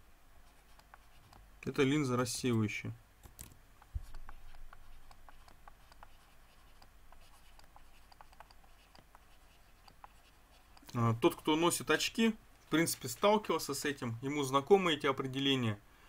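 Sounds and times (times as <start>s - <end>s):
small clicks and light scratching: 0.5s - 1.5s, 3.2s - 11.0s.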